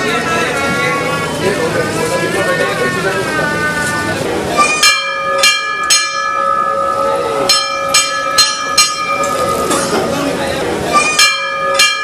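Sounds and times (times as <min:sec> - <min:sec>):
brass hand bell ringing: 0:04.6 - 0:09.9, 0:10.9 - 0:12.0.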